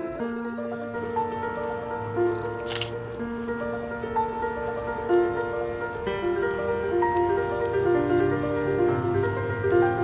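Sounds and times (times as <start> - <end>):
background music: 0.0 - 10.0
camera shutter click: 2.4 - 3.0.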